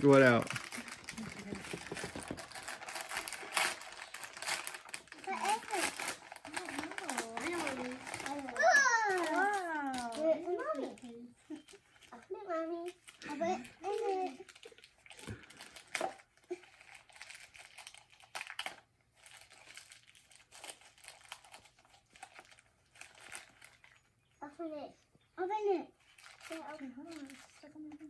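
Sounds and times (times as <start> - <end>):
gift wrapping crinkling: 0.0 - 24.6, 25.6 - 28.0
children's voices: 5.1 - 11.4.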